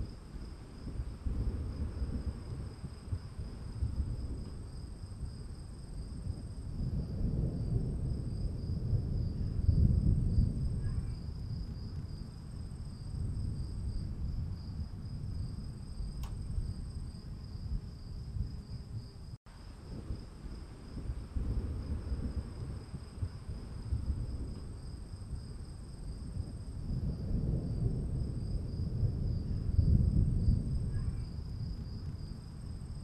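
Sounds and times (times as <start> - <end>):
faint click: 16.2 - 16.4.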